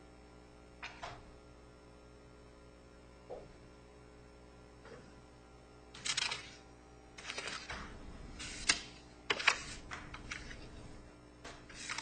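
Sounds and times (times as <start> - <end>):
paper pages rustling: 6.0 - 6.6, 7.2 - 7.8, 8.4 - 10.8, 11.7 - 12.0.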